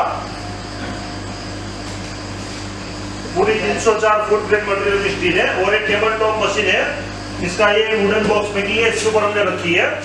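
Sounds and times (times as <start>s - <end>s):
machinery humming: 0.0s - 10.0s.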